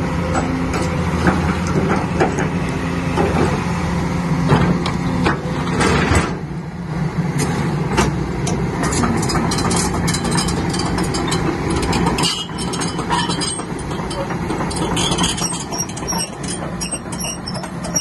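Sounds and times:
diesel engine running: 0:00.0 - 0:18.0
metallic clicks and clanks: 0:08.0 - 0:18.0.

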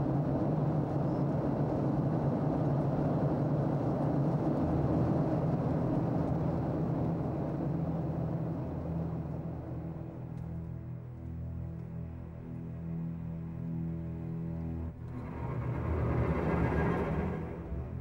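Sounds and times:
aircraft roar: 0:00.0 - 0:18.0
low hum: 0:00.0 - 0:18.0.

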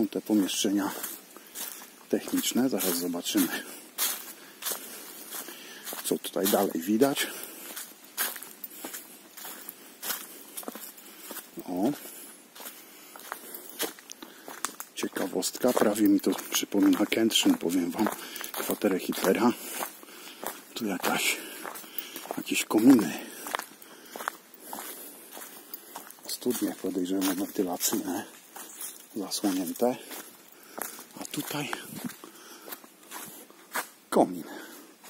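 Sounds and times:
footsteps on dry leaves: 0:00.0 - 0:35.0.

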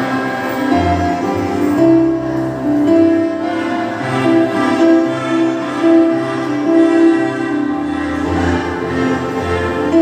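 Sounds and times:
children playing melodicas: 0:00.0 - 0:10.0.

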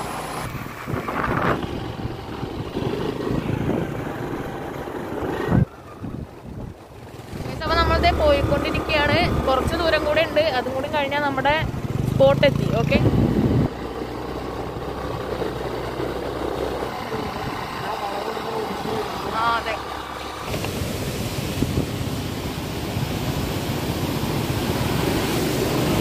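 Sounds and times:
even rushing noise: 0:00.0 - 0:26.0
vehicle engine hum: 0:00.0 - 0:26.0.

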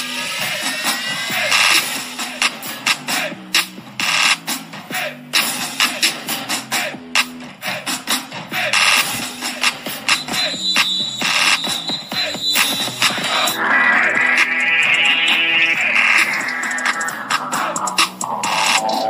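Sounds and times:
music with steady beat and bass: 0:00.0 - 0:19.0
high sustained tone: 0:13.3 - 0:17.2.

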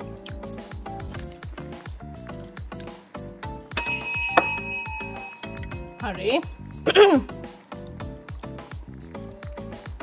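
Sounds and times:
background music with beat: 0:00.0 - 0:06.1, 0:07.3 - 0:10.0
bright bell ding: 0:03.8 - 0:06.3.

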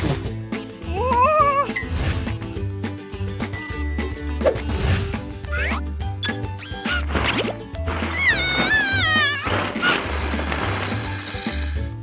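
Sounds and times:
cartoon music with bass pulse: 0:00.0 - 0:12.0
cartoon character squealing: 0:06.6 - 0:07.1, 0:08.0 - 0:10.0.

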